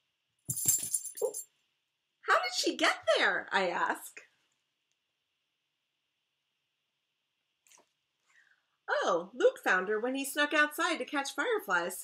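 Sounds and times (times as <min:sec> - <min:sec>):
dog tags jingling: 0:00.5 - 0:01.4.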